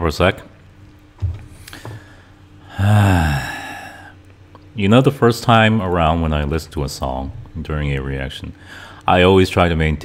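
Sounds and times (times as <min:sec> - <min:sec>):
man sighing: 0:01.6 - 0:04.2.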